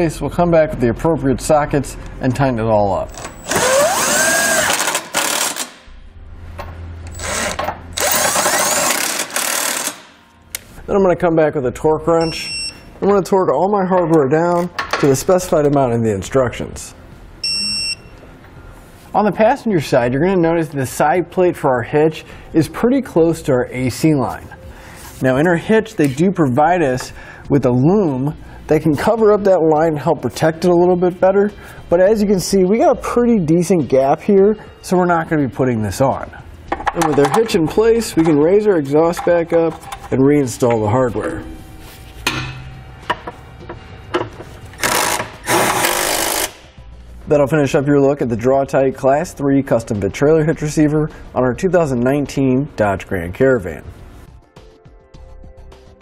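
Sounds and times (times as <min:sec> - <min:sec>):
impact driver running: 0:03.4 - 0:05.8, 0:07.1 - 0:10.1, 0:44.8 - 0:46.6
high electronic beep: 0:12.2 - 0:12.8, 0:17.4 - 0:18.2.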